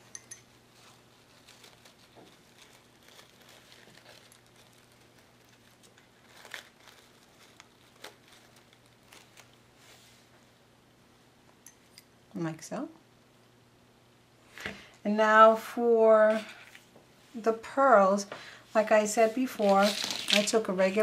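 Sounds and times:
low steady hum: 0:00.0 - 0:21.0
fabric rustling: 0:19.2 - 0:20.6.

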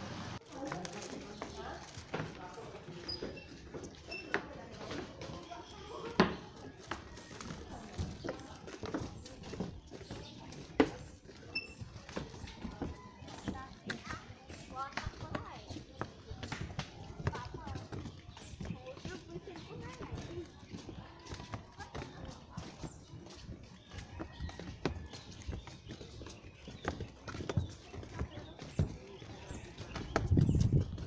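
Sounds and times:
footsteps on wooden boardwalk: 0:00.3 - 0:31.0
people talking: 0:00.4 - 0:31.0.

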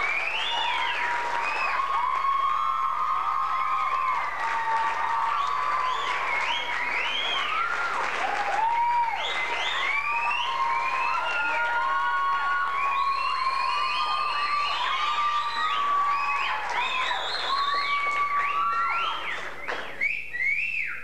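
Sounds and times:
people whistling: 0:00.0 - 0:02.7, 0:05.1 - 0:07.9, 0:08.9 - 0:21.0
audience applauding and cheering: 0:00.0 - 0:20.1.

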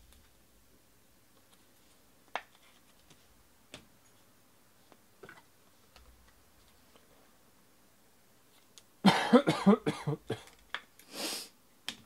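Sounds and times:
person coughing: 0:09.0 - 0:10.5
noisy intake of breath: 0:11.0 - 0:11.6.

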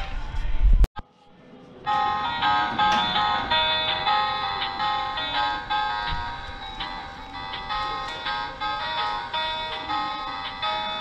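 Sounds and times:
tinny electronic toy melody: 0:01.8 - 0:11.0.

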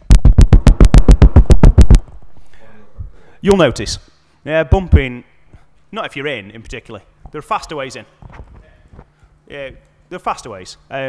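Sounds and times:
rapid sharp tapping: 0:00.0 - 0:02.1.

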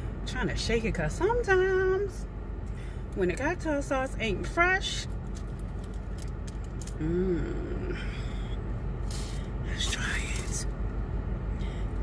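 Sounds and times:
car air conditioning hum: 0:00.0 - 0:12.0.

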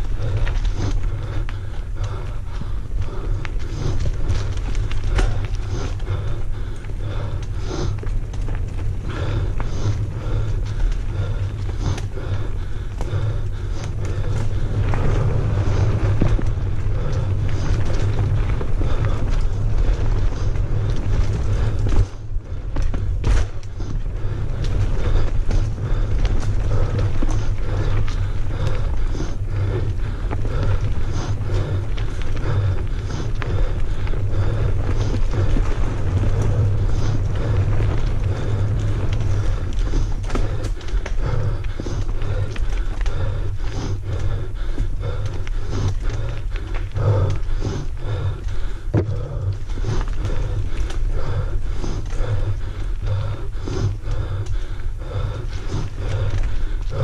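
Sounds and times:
bike tyres rumbling on dirt: 0:00.0 - 0:57.0.

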